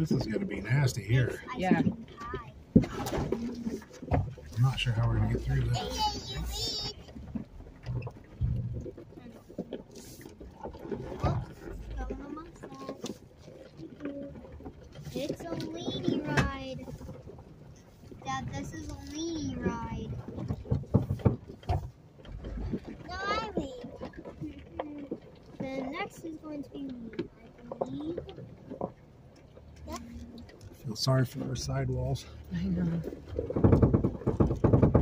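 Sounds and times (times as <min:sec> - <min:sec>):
low rumble: 0:00.0 - 0:29.2
car engine at low revs: 0:00.0 - 0:35.0
knocks and creaks from suspension: 0:00.0 - 0:35.0.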